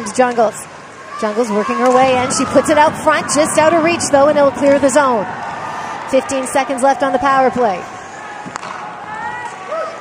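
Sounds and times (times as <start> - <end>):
crowd murmur: 1.5 - 10.0.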